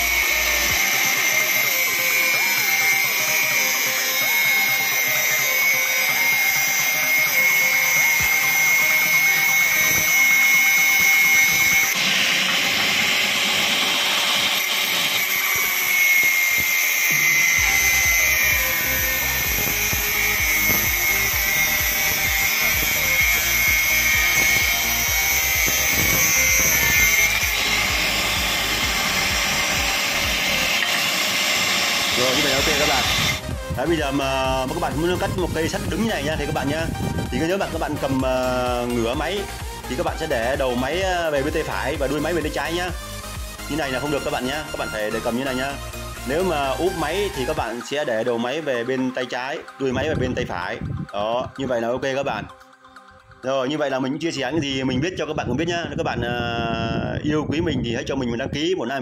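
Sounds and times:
angle grinder cutting metal: 0.0s - 50.7s.

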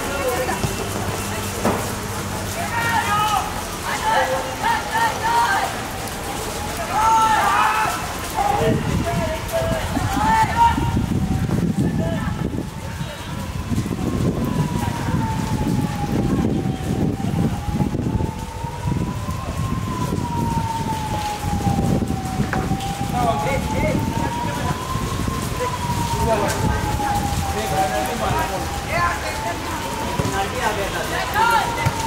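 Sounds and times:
siren wailing: 0.3s - 32.0s.

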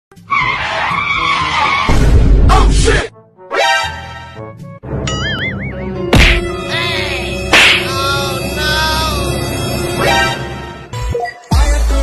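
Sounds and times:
tyre screech: 0.2s - 2.0s.

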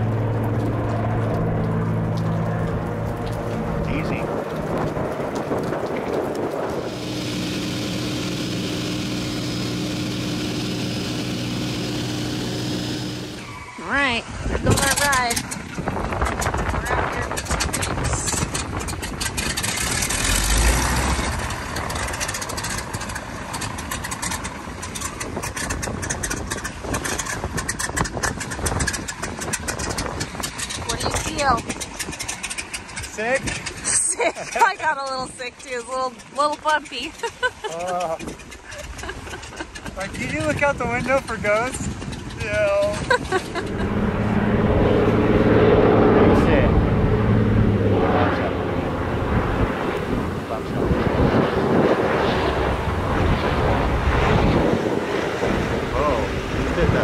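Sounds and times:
wind buffeting microphone: 0.0s - 9.0s, 13.3s - 57.0s
propeller plane engine droning: 0.0s - 57.0s.

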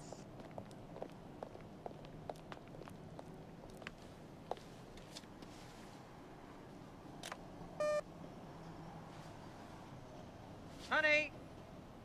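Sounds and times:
faint footsteps: 0.0s - 6.0s
cash machine beep: 7.8s - 8.0s.

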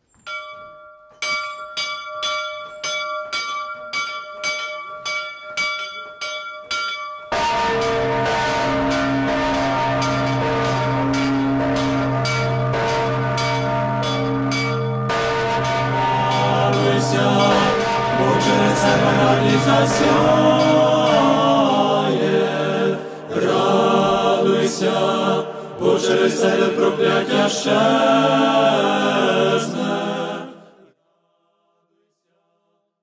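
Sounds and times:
deep sustained bell tones: 0.3s - 22.0s
church bell ringing: 0.3s - 22.4s.

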